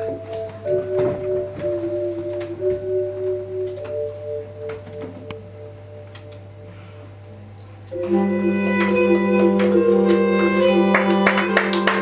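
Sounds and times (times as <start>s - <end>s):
saxophone violin and vibraphone notes: 0.0s - 12.0s
steady low hum: 0.0s - 12.0s.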